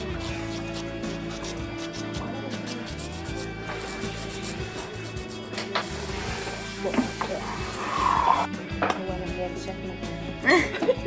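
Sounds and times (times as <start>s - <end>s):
nail file rubbing fingernails: 0.0s - 5.9s
background music: 0.0s - 11.0s.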